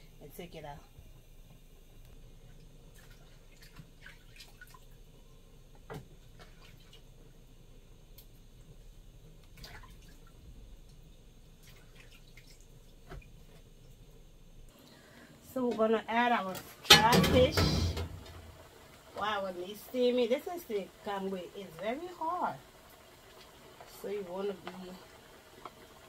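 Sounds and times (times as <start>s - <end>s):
water splashes and drips: 2.9s - 5.0s, 6.3s - 7.1s, 9.5s - 11.0s, 11.6s - 13.6s.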